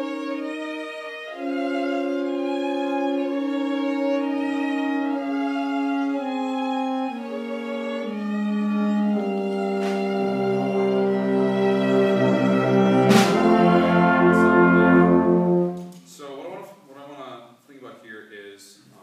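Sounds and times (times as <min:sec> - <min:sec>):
ensemble playing slow chords: 0:07.8 - 0:15.9.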